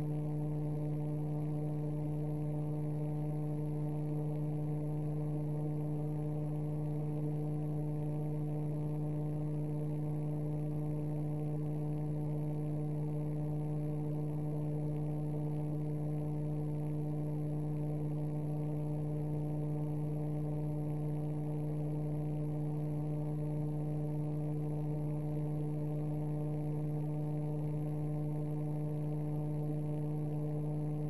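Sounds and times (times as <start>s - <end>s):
electrical hum: 0.0s - 31.0s.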